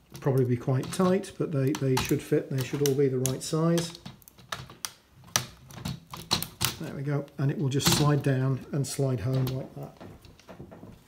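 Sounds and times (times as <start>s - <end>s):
plastic parts clicking and knocking: 0.0s - 7.0s, 7.8s - 8.4s, 9.2s - 11.0s.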